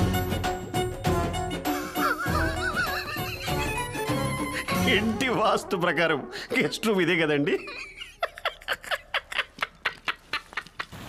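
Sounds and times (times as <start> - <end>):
film music: 0.0 - 7.4.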